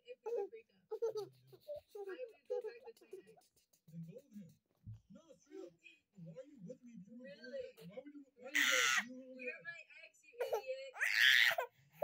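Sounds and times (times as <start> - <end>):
toddler screeching: 11.0 - 11.6.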